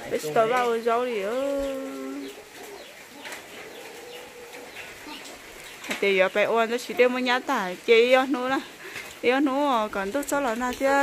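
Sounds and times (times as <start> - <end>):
person's voice: 0.0 - 2.2
background hiss: 0.0 - 11.0
faint bird cooing: 1.1 - 5.7.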